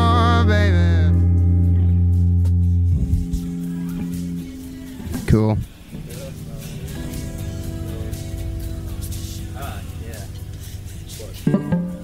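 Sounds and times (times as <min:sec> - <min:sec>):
plucked electric guitar note: 0:00.0 - 0:12.0
quiet talk: 0:03.1 - 0:08.5.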